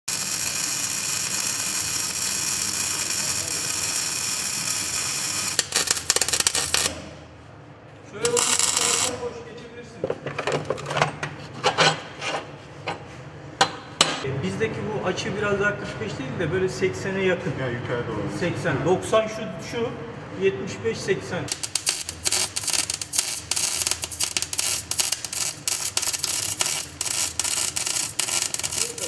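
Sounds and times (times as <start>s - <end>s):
welding arc crackling hiss: 0.0s - 7.0s, 8.3s - 9.2s, 21.5s - 29.0s.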